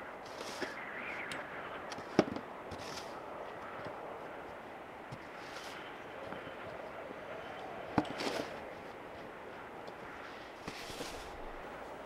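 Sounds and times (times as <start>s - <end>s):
snow shovel scraping snow: 0.3s - 0.8s, 2.7s - 3.2s, 5.4s - 5.8s, 8.1s - 8.6s, 10.2s - 11.6s.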